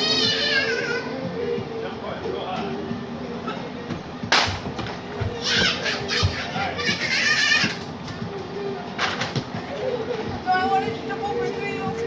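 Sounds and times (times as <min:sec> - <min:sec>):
children yelling: 0:00.0 - 0:01.5, 0:05.2 - 0:08.9.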